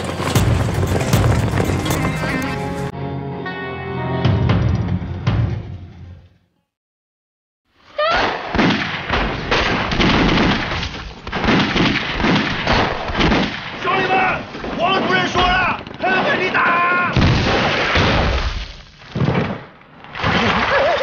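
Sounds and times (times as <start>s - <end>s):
rapid gunfire: 8.5s - 13.8s.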